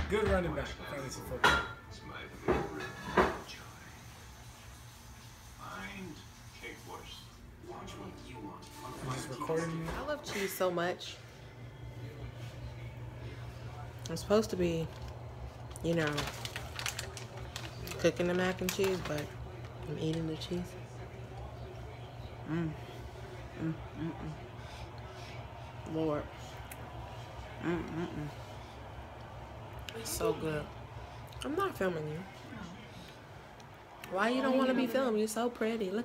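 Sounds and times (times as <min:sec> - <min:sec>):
low background hum: 0:00.0 - 0:36.0.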